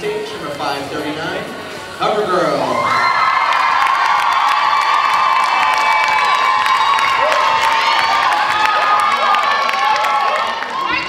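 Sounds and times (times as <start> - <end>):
audience cheering and screaming: 2.6 - 11.0
scattered clapping: 3.3 - 11.0.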